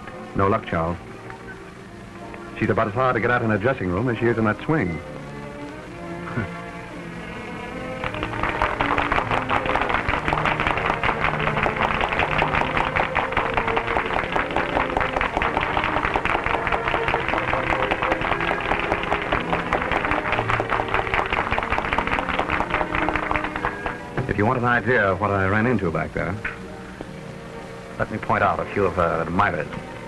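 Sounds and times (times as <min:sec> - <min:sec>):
orchestra playing lively music: 0:02.6 - 0:26.7
tap-dancing feet: 0:08.0 - 0:24.4.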